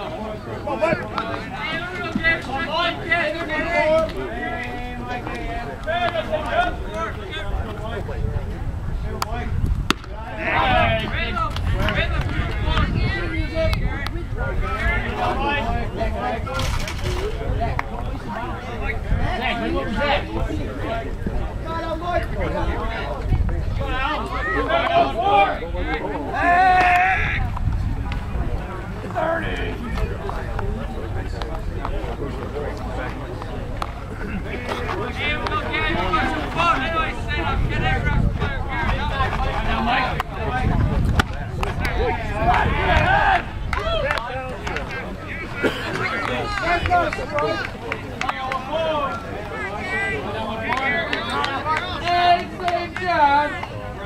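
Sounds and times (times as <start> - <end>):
players and spectators chattering: 0.0 - 54.0
wind rumble on microphone: 6.7 - 24.2, 25.0 - 32.7, 34.9 - 45.3
baseball bat crack: 9.2 - 10.4.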